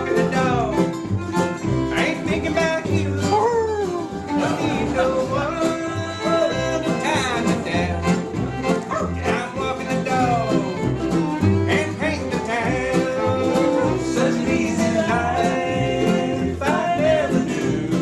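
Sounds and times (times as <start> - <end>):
man singing: 0.0 - 1.0, 1.8 - 18.0
bluegrass band playing: 0.0 - 18.0.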